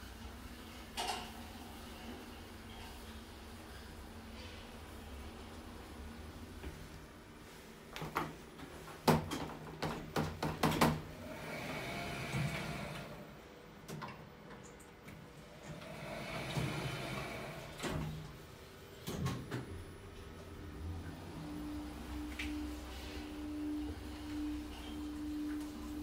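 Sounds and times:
sliding lift doors whirring: 0:10.8 - 0:13.5, 0:15.4 - 0:26.0.

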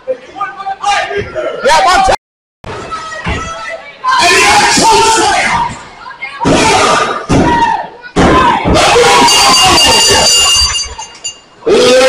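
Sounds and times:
crowd shouting and cheering: 0:00.4 - 0:12.0.

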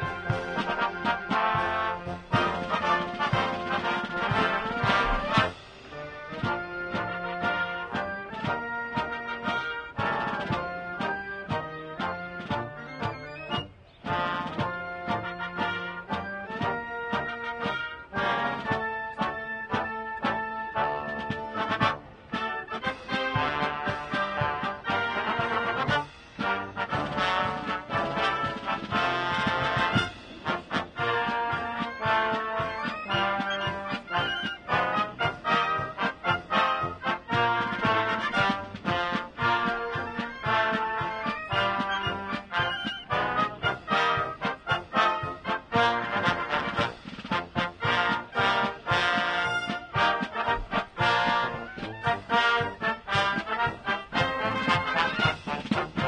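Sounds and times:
brass band playing: 0:00.0 - 0:56.0.

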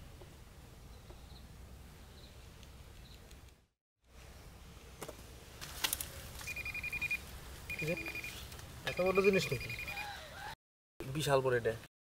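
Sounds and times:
rapid high beeps: 0:06.5 - 0:10.1.

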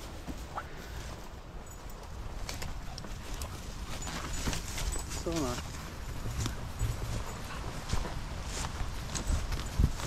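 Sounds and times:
footsteps rustling through grass: 0:00.0 - 0:10.0
wind rumble on microphone: 0:05.8 - 0:10.0.

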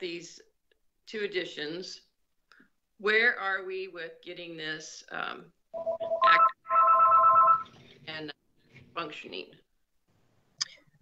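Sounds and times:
short telephone beep: 0:05.8 - 0:07.7
steady multi-pitch telephone tone: 0:05.8 - 0:07.7.

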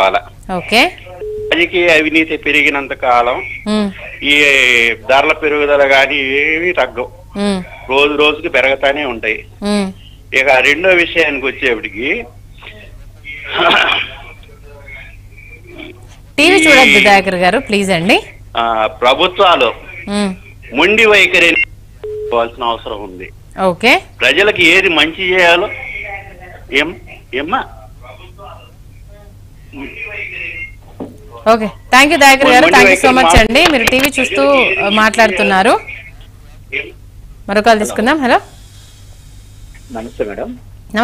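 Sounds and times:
speech over telephone line: 0:00.0 - 0:21.7, 0:24.2 - 0:38.4.

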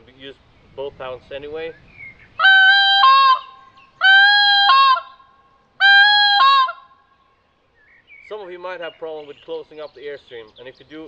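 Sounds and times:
goose call honks: 0:02.4 - 0:05.2, 0:05.8 - 0:06.9.

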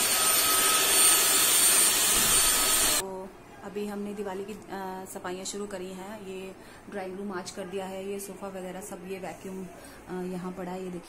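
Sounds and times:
vacuum cleaner running: 0:00.0 - 0:03.0.

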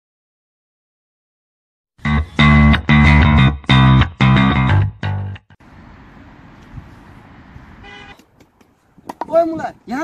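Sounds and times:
distant traffic rumble: 0:05.6 - 0:10.0
vehicle horn toot: 0:07.8 - 0:08.3.

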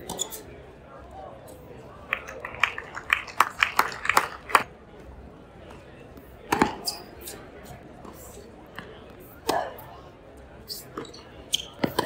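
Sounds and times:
spectators clapping: 0:02.1 - 0:04.7.

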